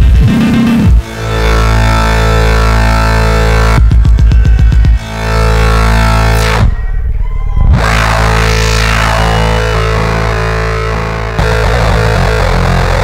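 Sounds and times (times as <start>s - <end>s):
layered synthesizer drone: 0.0s - 13.0s
falling synth sweep: 1.0s - 13.0s.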